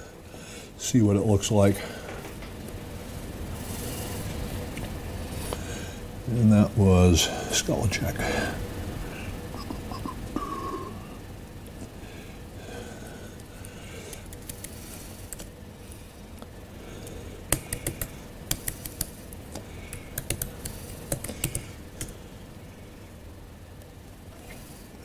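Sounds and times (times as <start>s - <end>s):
laptop keyboard keys clicking: 14.1s - 15.5s, 17.5s - 19.2s, 19.8s - 22.1s.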